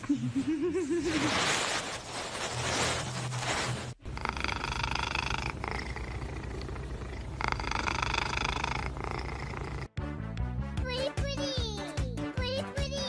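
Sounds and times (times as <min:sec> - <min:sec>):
cat purring: 0:04.0 - 0:09.9.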